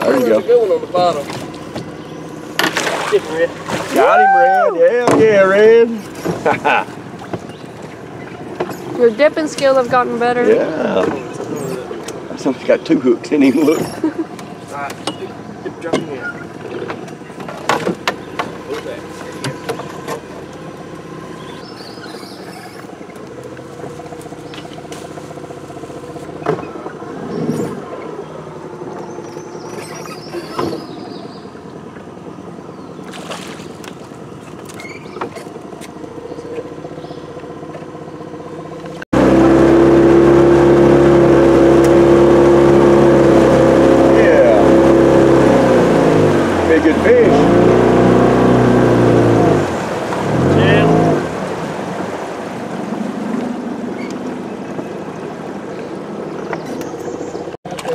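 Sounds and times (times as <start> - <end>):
outboard motor running: 0.0 - 57.9.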